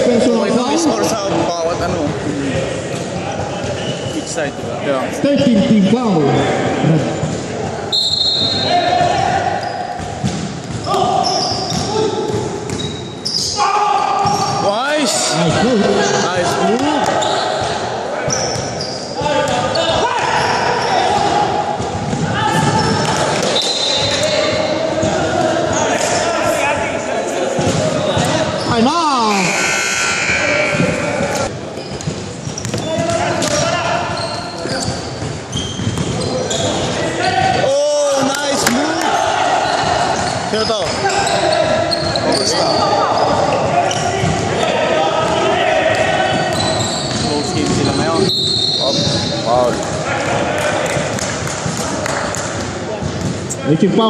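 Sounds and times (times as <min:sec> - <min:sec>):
sneaker squeaks: 0:03.0 - 0:04.8, 0:06.4 - 0:14.7, 0:16.6 - 0:21.3, 0:21.9 - 0:26.2, 0:27.6 - 0:37.4, 0:38.5 - 0:50.0
players calling out: 0:03.4 - 0:53.3.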